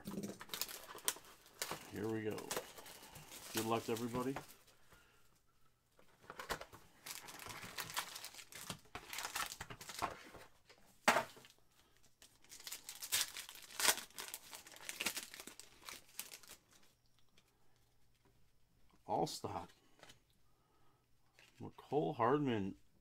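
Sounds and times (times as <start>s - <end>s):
plastic wrapping crinkling and tearing: 0.1s - 4.4s, 6.3s - 10.2s, 12.2s - 16.9s.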